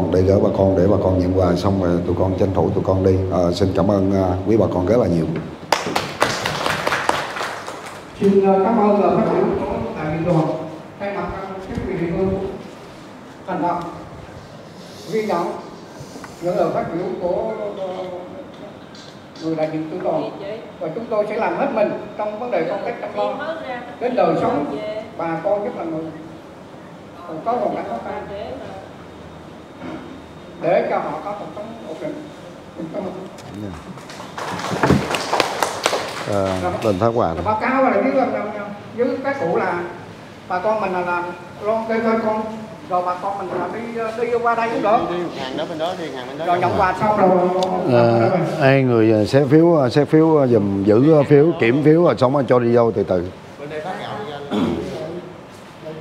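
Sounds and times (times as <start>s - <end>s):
audience applauding: 5.7s - 8.1s, 33.9s - 37.0s.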